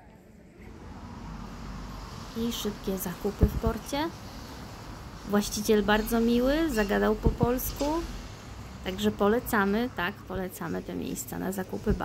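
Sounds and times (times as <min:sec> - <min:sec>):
low rumble with hiss: 0:00.0 - 0:12.0.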